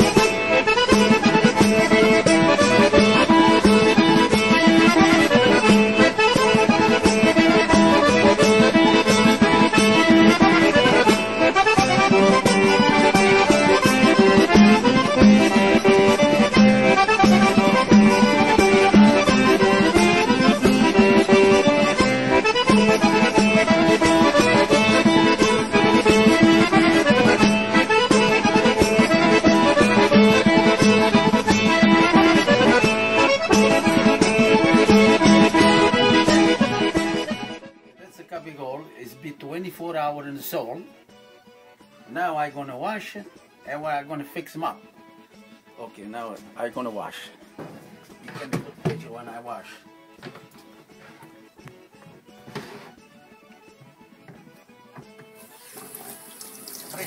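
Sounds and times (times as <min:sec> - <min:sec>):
accordion tune: 0:00.0 - 0:57.0.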